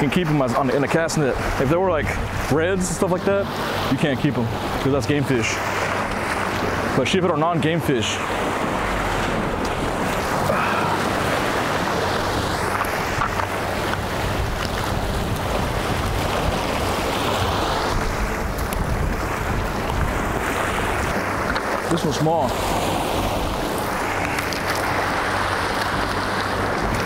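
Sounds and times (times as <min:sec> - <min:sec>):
waves washing against rocks: 0:00.0 - 0:27.0
wind buffeting microphone: 0:00.0 - 0:27.0.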